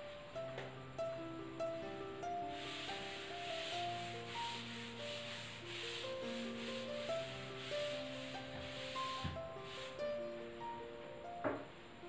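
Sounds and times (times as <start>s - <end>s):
duster rubbing a chalkboard: 2.5s - 10.1s.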